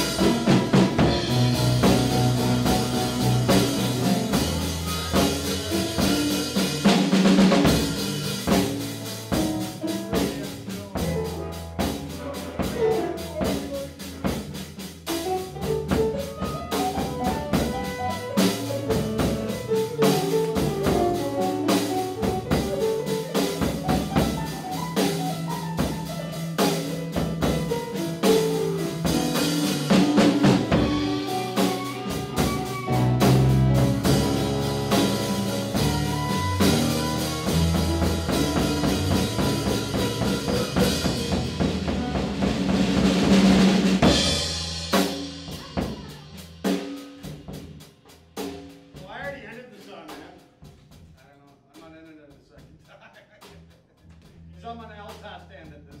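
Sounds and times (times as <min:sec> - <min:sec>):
live blues band playing: 0:00.0 - 0:49.0
drum hits: 0:00.0 - 0:51.2.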